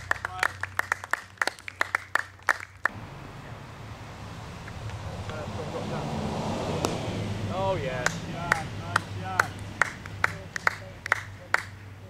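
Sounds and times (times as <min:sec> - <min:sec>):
hand claps: 0:00.0 - 0:02.9, 0:08.0 - 0:11.8
cricket bat striking ball: 0:06.8 - 0:07.0.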